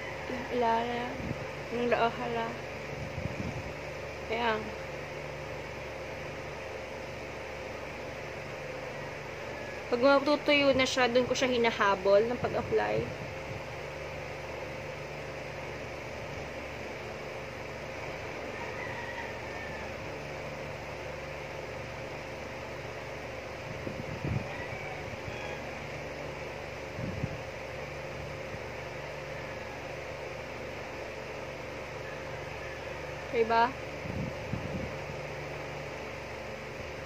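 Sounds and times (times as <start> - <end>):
mechanical hum: 0.0 - 37.0.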